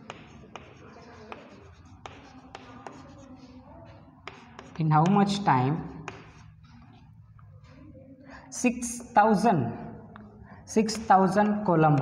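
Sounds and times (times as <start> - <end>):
chalk tapping on board: 0.0 - 3.6, 4.2 - 5.3, 5.9 - 6.8
chalk scratching on chalkboard: 0.0 - 7.2.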